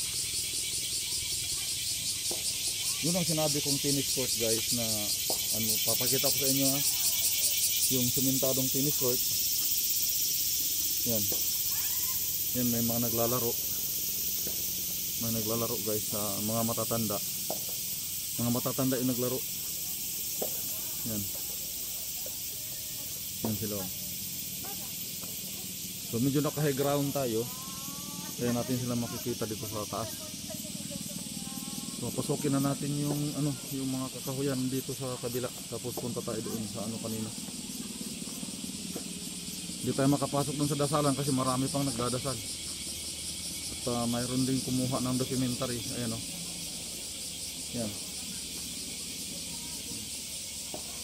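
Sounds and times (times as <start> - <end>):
high outdoor hiss: 0.0 - 51.0
pulsing insect chorus: 0.0 - 51.0.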